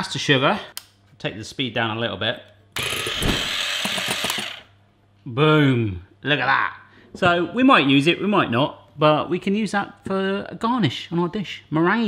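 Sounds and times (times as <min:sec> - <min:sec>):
electric hand mixer whirring: 0:02.8 - 0:04.6.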